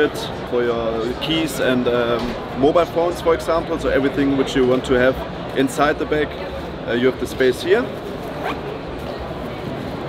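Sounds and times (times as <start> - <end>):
zipper being worked: 8.2 - 8.7.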